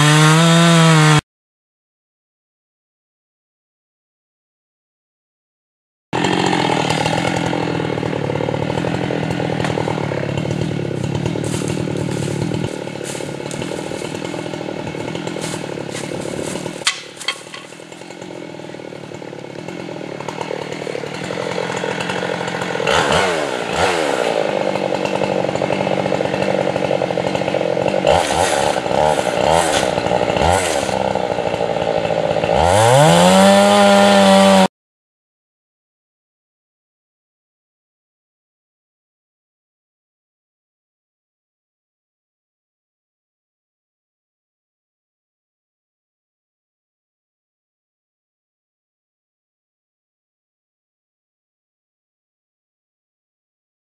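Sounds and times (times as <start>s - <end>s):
chainsaw cutting wood: 0.0s - 1.2s, 6.2s - 34.7s.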